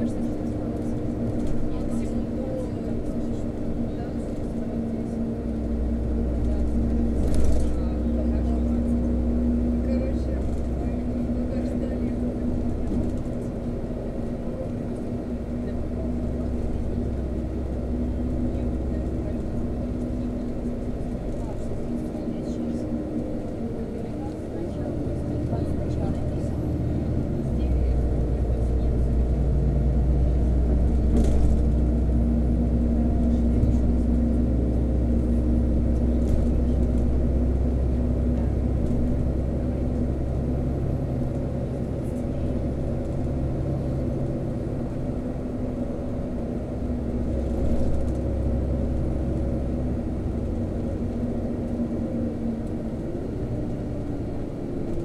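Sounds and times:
bus engine drone: 0:00.0 - 0:55.0.

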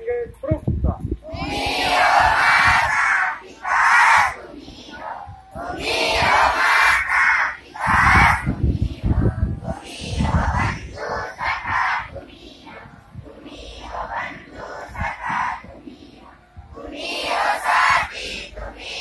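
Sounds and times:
children chanting in unison: 0:01.2 - 0:19.0.

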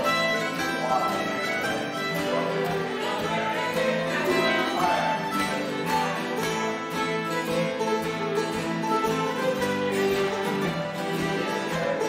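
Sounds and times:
acoustic guitar: 0:00.0 - 0:12.0
fiddle tune: 0:00.0 - 0:12.0
mandolin: 0:00.0 - 0:12.0.

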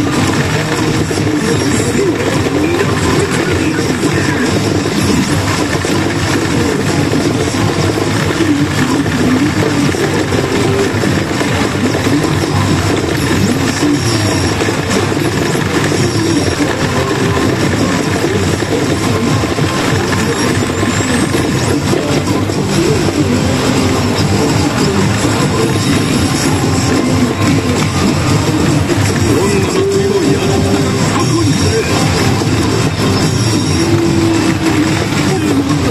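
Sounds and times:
dense steady din: 0:00.0 - 0:35.9
pachinko machine music and effects: 0:00.0 - 0:35.9.

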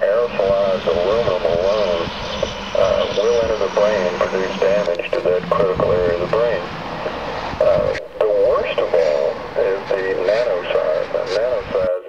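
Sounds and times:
steady low hum: 0:00.0 - 0:12.0
person speaking: 0:02.8 - 0:12.0.

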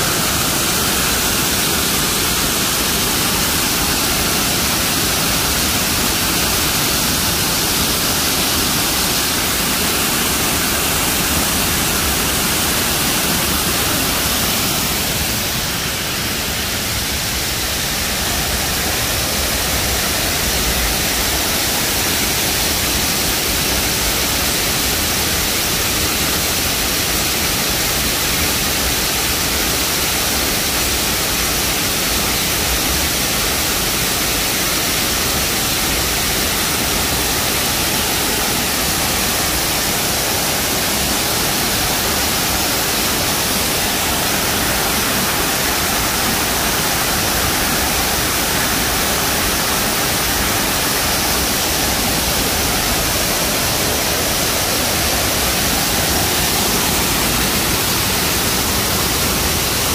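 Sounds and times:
waterfall splashing onto rocks: 0:00.0 - 0:59.9.

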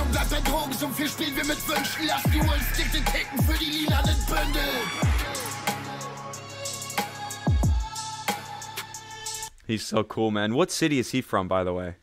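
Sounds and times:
man rapping over hip hop beat: 0:00.0 - 0:09.4.

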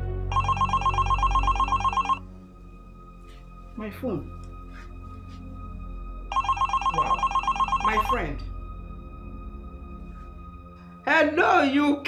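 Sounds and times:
mobile phone ringing: 0:00.3 - 0:02.2, 0:06.3 - 0:08.2.

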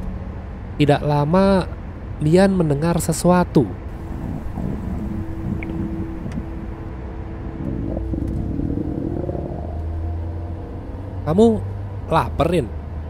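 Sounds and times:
car engine hum: 0:03.7 - 0:13.0
stomach growling: 0:04.0 - 0:06.7, 0:07.5 - 0:09.8.

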